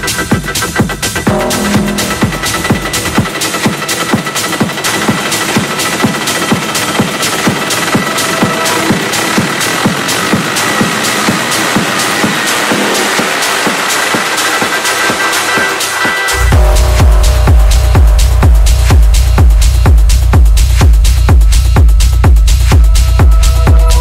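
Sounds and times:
repeating electronic percussion: 0.0s - 24.0s
held high synth tone: 1.3s - 4.2s, 8.0s - 9.6s.

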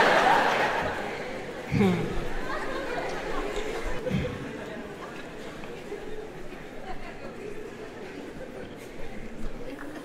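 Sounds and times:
audience murmuring: 0.0s - 10.0s
low talk in a large hall: 0.0s - 10.0s.

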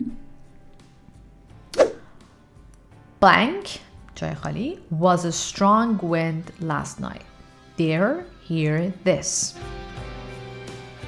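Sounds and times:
soft background music: 0.0s - 11.0s
whoosh sound effect: 1.7s - 2.1s.

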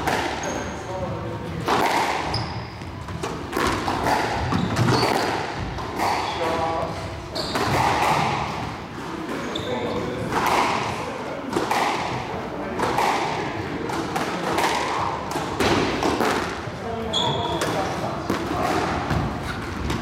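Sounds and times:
squash ball knocks echoing: 0.0s - 20.0s
shoe squeak on wooden floor: 0.4s - 0.9s, 2.2s - 3.0s, 4.5s - 5.3s, 7.3s - 7.9s, 9.4s - 10.2s, 17.1s - 17.8s.

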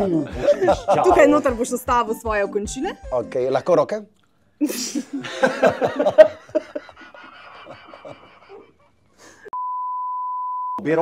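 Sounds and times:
censor beep: 9.6s - 10.8s.

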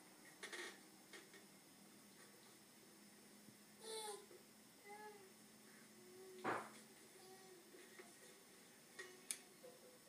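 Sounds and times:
baby vocal sound: 3.8s - 4.3s.

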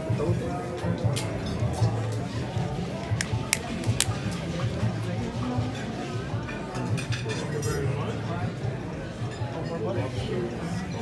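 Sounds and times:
background music: 0.0s - 6.9s
diners chatting: 0.0s - 11.0s.

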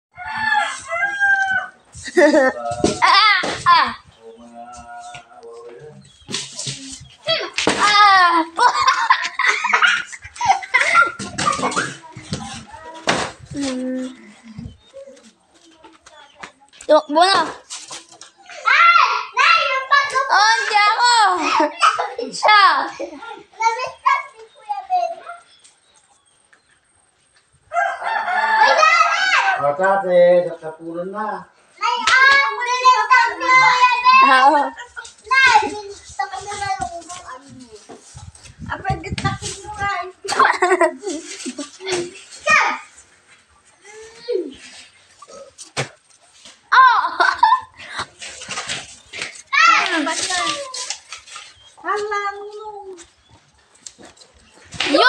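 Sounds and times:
rooster crowing: 0.1s - 1.8s, 27.7s - 29.7s.

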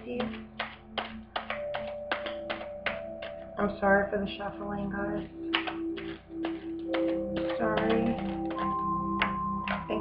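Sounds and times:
soft background music: 0.0s - 10.0s
cards being shuffled: 5.5s - 9.9s.

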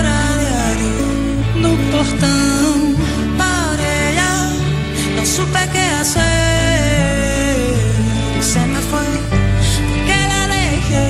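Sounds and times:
band accompaniment with bass: 0.0s - 11.0s
woman singing into microphone: 0.0s - 11.0s.

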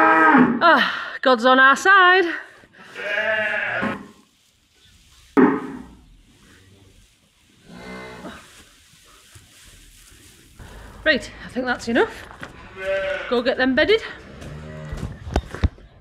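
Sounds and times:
livestock calling: 12.6s - 13.6s.

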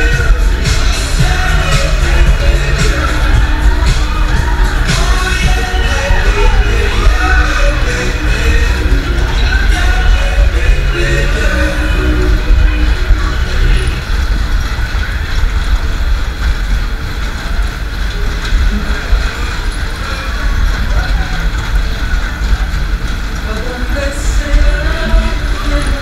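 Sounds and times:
fairground music with heavy bass: 0.0s - 17.2s, 17.8s - 26.0s
ride car rushing and rumbling: 0.0s - 26.0s.

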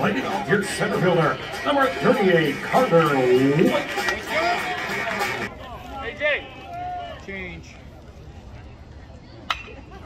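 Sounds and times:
stadium crowd murmur: 0.0s - 10.0s.

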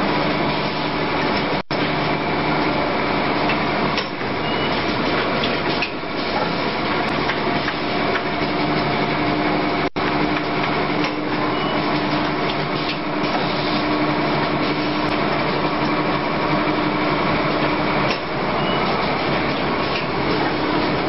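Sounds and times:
packing machine running: 0.0s - 21.0s.

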